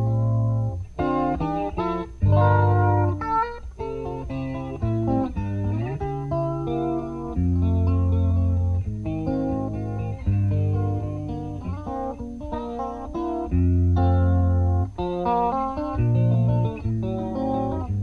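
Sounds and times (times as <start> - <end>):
lap-style electric guitar ballad: 0.0 - 18.0.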